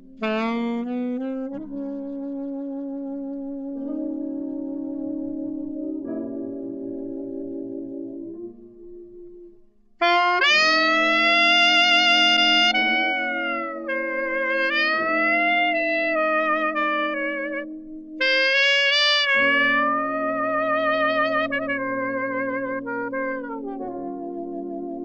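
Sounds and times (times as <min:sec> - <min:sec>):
alto saxophone ballad melody: 0:00.0 - 0:25.0.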